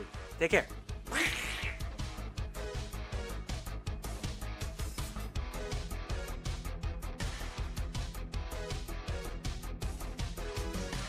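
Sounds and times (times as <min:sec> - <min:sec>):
raspy duck quack: 0:01.1 - 0:01.9
music with steady beat: 0:01.9 - 0:11.0.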